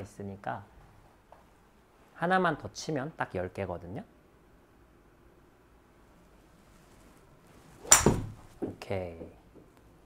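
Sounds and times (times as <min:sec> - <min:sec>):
golf club striking ball: 0:07.8 - 0:08.7.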